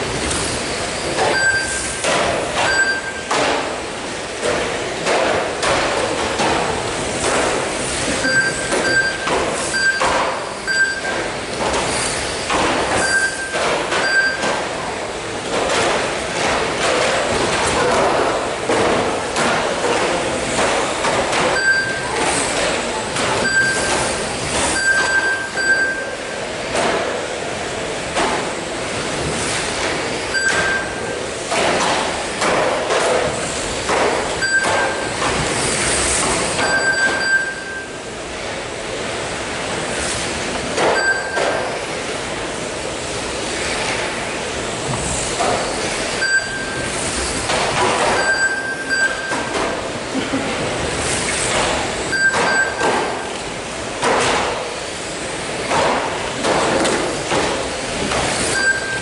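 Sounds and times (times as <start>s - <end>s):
short high electronic beeps: 1.3s - 2.0s, 2.7s - 3.3s, 8.2s - 10.1s, 10.7s - 11.2s, 13.0s - 14.4s, 23.4s - 24.0s, 24.8s - 26.2s, 30.3s - 31.0s, 36.6s - 38.0s, 46.2s - 46.8s, 48.2s - 49.5s, 58.5s - 59.0s.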